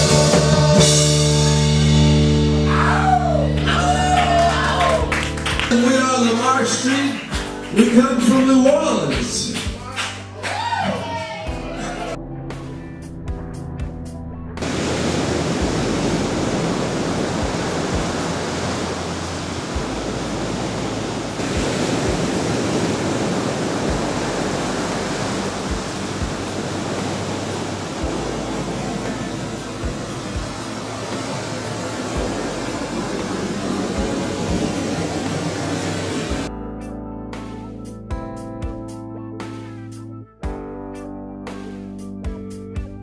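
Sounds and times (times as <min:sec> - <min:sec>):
low bass drone: 0:00.0 - 0:05.8, 0:11.6 - 0:43.0
ocean waves breaking: 0:03.8 - 0:09.3, 0:14.6 - 0:36.5.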